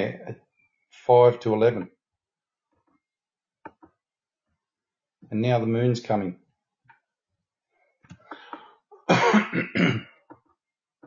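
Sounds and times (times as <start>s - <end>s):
man coughing: 9.0s - 10.2s.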